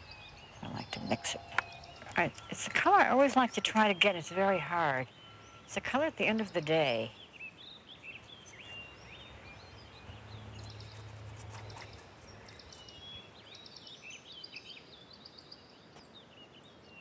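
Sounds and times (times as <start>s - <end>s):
birds chirping and singing: 0.0s - 17.0s.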